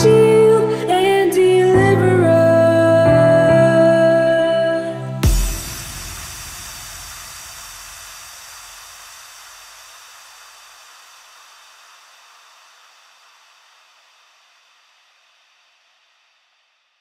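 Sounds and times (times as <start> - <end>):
low rumble: 5.2 - 8.5
white-noise hiss tail: 5.2 - 17.0.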